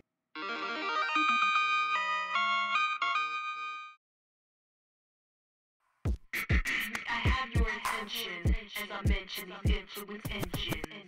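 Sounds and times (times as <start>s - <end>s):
music jingle: 0.4s - 4.0s.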